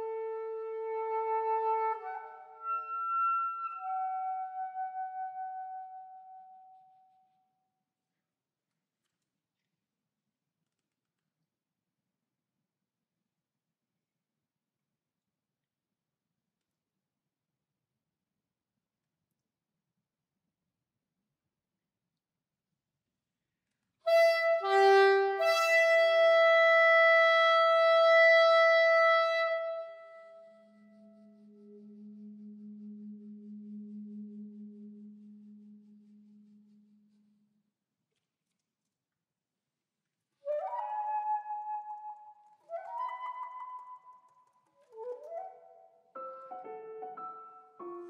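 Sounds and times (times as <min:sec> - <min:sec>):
soprano saxophone long high note: 0:24.1 - 0:30.3.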